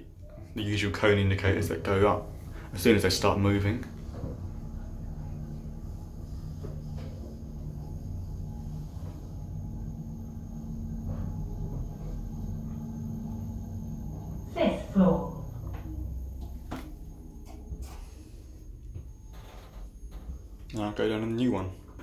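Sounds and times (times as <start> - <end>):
lift travelling with low rumble: 0.0 - 22.0.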